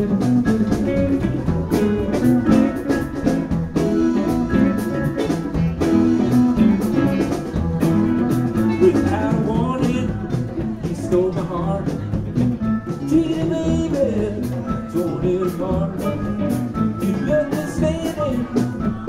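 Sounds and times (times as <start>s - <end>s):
electric guitars: 0.0s - 19.0s
steady drum beat: 0.0s - 19.0s.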